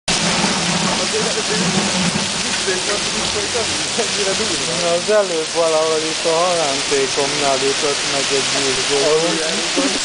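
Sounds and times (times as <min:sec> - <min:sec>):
heavy rain on a paved street: 0:00.1 - 0:10.0.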